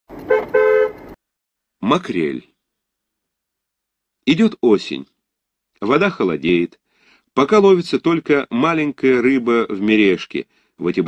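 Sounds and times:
car horn honking: 0.2s - 1.2s.

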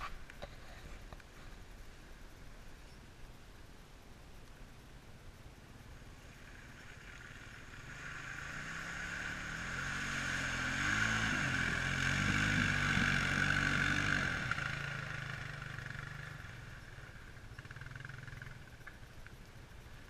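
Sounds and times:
atv engine passing: 5.9s - 20.0s
tires churning through mud: 6.2s - 18.6s.

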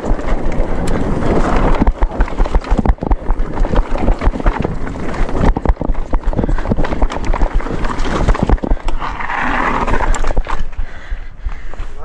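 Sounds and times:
bike knocking and rattling: 0.0s - 11.9s
bike tyres rumbling over dirt: 0.0s - 12.0s
wind buffeting microphone: 0.0s - 12.0s.

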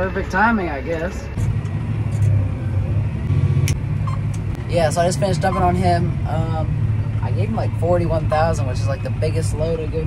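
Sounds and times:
tractor diesel engine drone: 0.0s - 10.0s.

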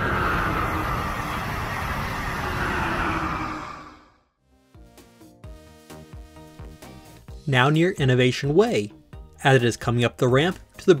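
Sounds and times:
train rushing past: 0.0s - 4.2s
background music: 4.4s - 11.0s.

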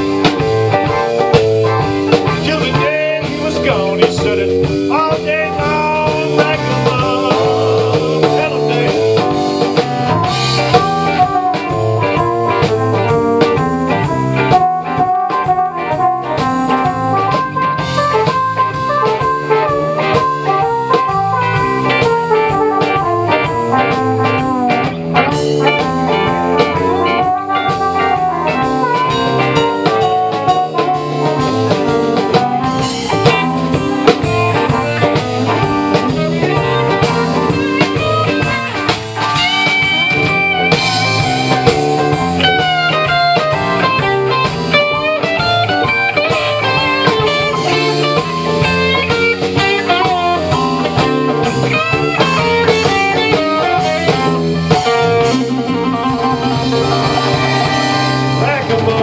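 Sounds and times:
bass guitar: 0.0s - 59.0s
drum kit: 0.0s - 59.0s
electric guitar: 0.0s - 59.0s
keyboard: 0.0s - 59.0s.

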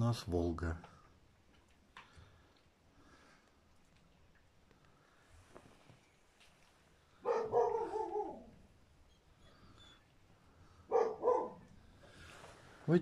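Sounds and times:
animal crying: 7.3s - 10.1s.

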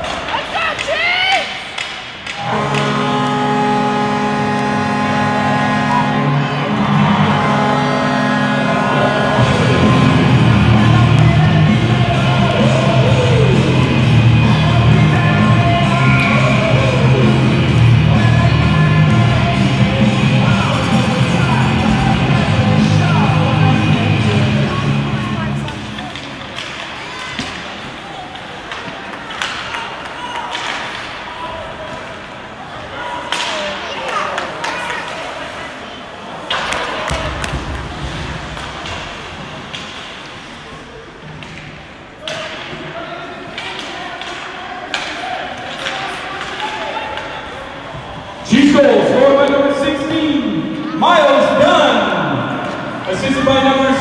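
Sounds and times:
people shouting: 5.8s - 25.4s.

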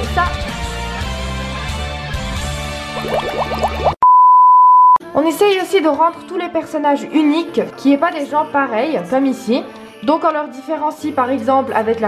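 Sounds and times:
loud steady beep tone: 4.0s - 5.0s
background music: 5.0s - 12.0s.

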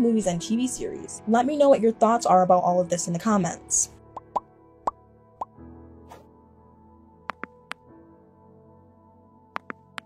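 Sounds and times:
quiet background music: 0.0s - 10.0s
rising bloop pop effects: 4.2s - 4.4s.

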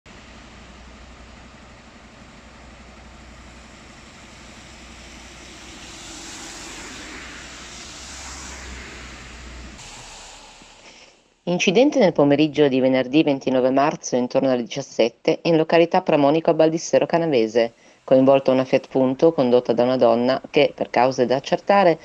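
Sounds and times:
car passing on wet road: 0.1s - 11.5s
steady low road hum: 0.1s - 11.5s.

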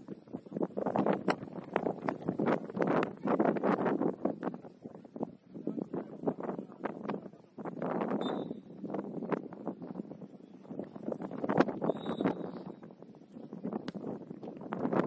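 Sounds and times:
wind gusting on microphone: 0.0s - 15.0s.

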